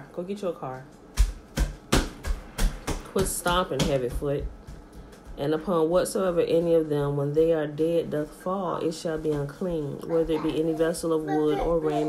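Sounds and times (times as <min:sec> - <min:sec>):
child stomping footsteps on floor: 0:01.0 - 0:07.1, 0:08.8 - 0:12.0.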